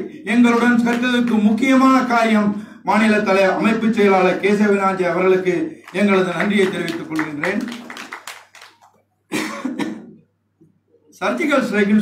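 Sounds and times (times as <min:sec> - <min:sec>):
man coughing into microphone: 0:09.3 - 0:10.3.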